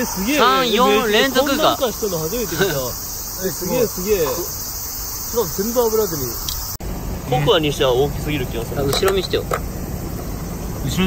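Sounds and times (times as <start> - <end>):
insect chorus chirring: 0.0 - 11.0
people's voices: 0.0 - 11.0.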